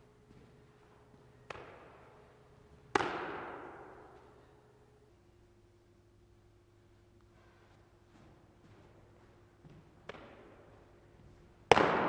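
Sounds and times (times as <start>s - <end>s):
baseball smacking into glove: 2.9s - 4.1s.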